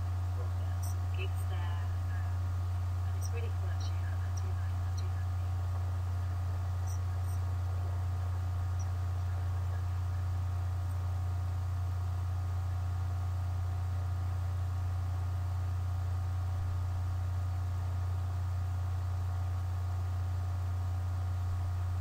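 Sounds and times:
steady low hum: 0:00.0 - 0:22.0
faint high tones: 0:06.6 - 0:10.9.

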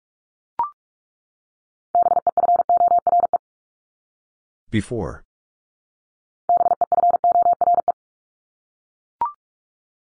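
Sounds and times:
morse code tone: 0:06.5 - 0:08.0.

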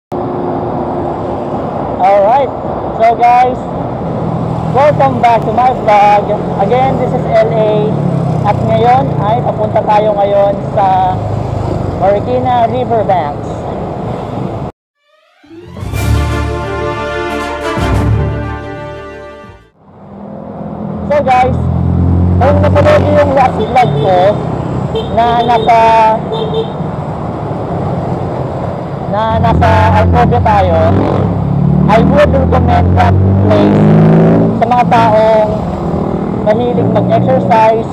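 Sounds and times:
road traffic: 0:00.1 - 0:14.8, 0:15.4 - 0:37.9
vehicle horn toot: 0:24.9 - 0:26.8.

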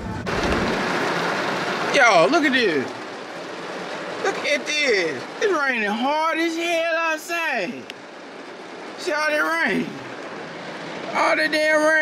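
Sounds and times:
hard rain on car roof: 0:00.0 - 0:12.0.

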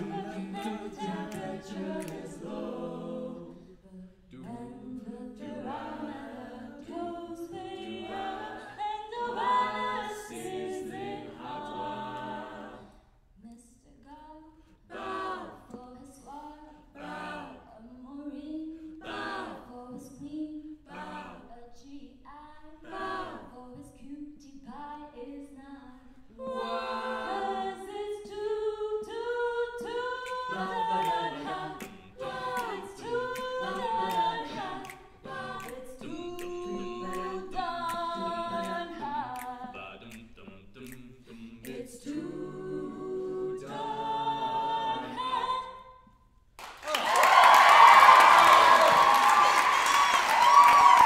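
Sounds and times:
a cappella group singing: 0:00.0 - 0:46.5.

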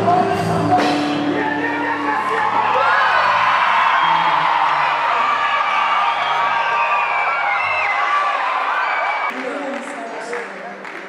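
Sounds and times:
band music with low bass: 0:00.0 - 0:06.8
audience cheering and whooping: 0:01.3 - 0:09.4.

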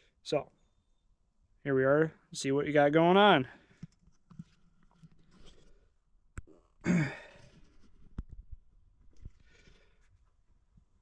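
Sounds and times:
handling sounds with clicks: 0:03.7 - 0:06.5
man sighing: 0:06.5 - 0:07.6
soft breath: 0:09.3 - 0:10.3.

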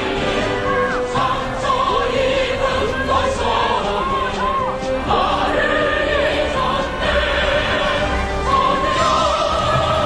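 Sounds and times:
choir singing held notes: 0:00.0 - 0:10.0.

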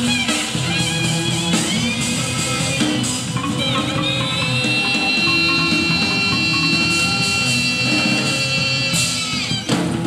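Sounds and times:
low instrumental backing: 0:00.3 - 0:09.4
plucked guitar notes: 0:02.1 - 0:08.8.

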